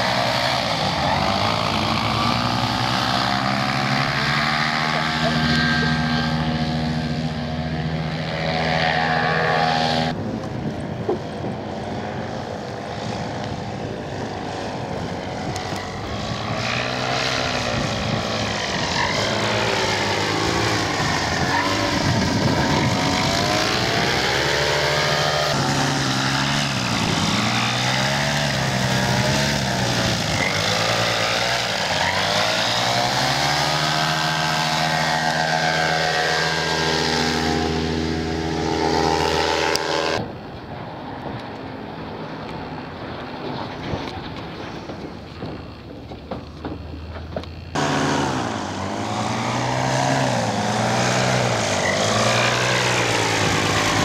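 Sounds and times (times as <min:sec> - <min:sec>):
paramotor engine and propeller: 0:00.0 - 0:54.0.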